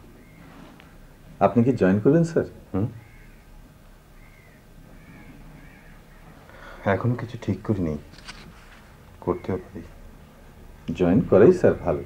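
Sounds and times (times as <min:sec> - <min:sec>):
faint animal calls: 0:00.0 - 0:01.0, 0:02.7 - 0:06.9, 0:09.2 - 0:10.0
low steady hum: 0:00.0 - 0:12.0.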